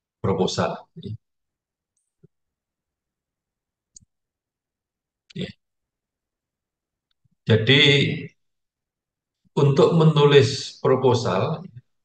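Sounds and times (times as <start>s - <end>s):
man speaking: 0.2s - 1.2s, 5.3s - 5.6s, 9.6s - 11.8s.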